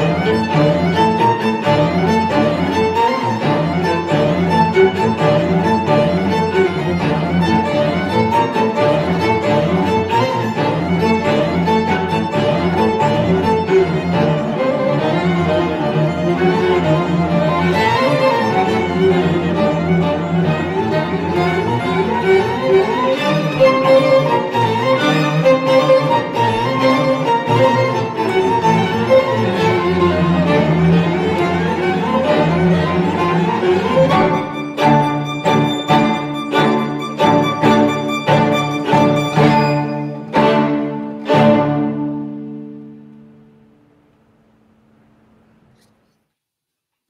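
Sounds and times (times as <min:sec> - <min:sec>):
string quartet playing: 0:00.0 - 0:43.5.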